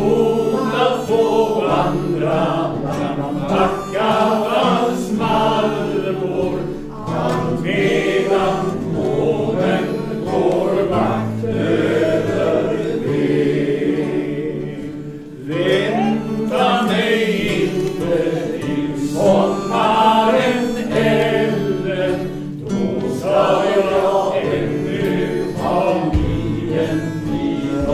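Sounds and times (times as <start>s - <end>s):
acoustic guitars: 0.0s - 27.9s
group of men singing: 0.0s - 27.9s.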